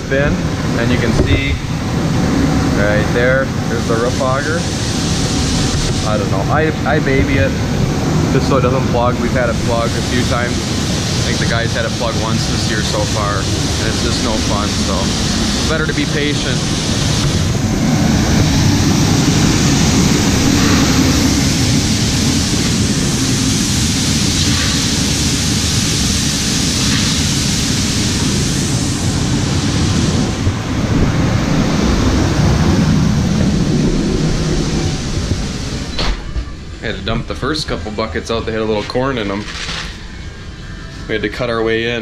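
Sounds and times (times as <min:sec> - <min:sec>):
grain-handling machinery running: 0:00.0 - 0:42.0.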